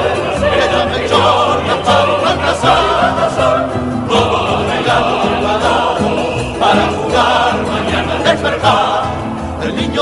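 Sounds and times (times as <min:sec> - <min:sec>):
choir singing religious song: 0:00.0 - 0:10.0
musical accompaniment: 0:00.0 - 0:10.0.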